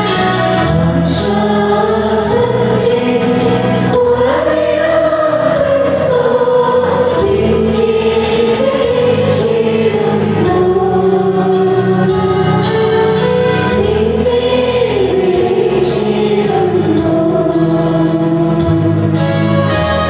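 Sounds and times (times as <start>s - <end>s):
choir singing a hymn: 0.0s - 20.0s
low accompaniment chords: 0.0s - 20.0s.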